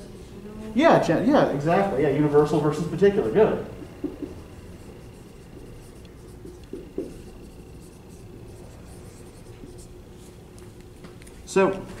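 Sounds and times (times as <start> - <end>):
faint steady hum: 0.0 - 12.0
marker writing on whiteboard: 3.3 - 11.3
soft knock: 4.0 - 4.4.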